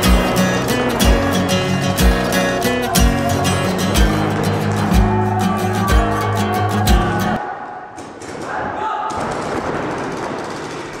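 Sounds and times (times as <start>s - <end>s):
paintball markers firing: 8.0s - 11.0s.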